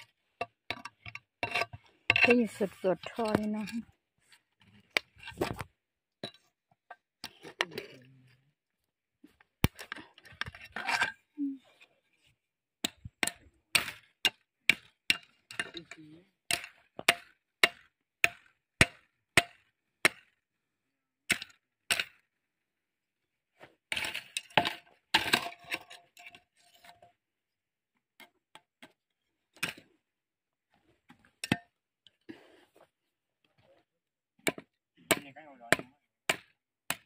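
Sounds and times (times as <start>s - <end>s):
person's voice: 2.3s - 3.8s.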